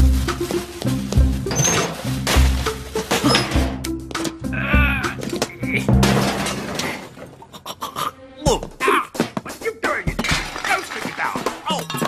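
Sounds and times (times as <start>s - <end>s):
cartoon music: 4.4s - 6.1s
glass shattering: 5.4s - 7.4s, 10.2s - 12.0s.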